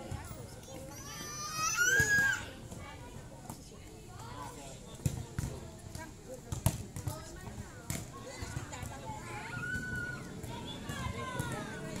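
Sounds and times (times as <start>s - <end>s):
children chattering and shouting: 0.0s - 5.6s, 7.1s - 12.0s.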